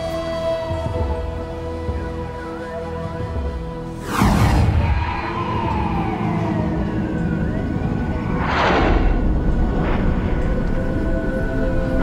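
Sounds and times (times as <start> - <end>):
siren wails: 1.9 - 9.4
whoosh sweeping down: 4.0 - 10.8
low rumble: 4.1 - 12.0.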